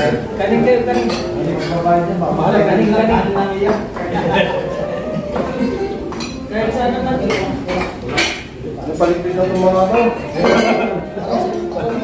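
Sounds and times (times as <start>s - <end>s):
murmur of conversation: 0.0s - 12.0s
cutlery clinking on plates: 0.8s - 2.0s, 5.3s - 6.5s, 7.2s - 12.0s.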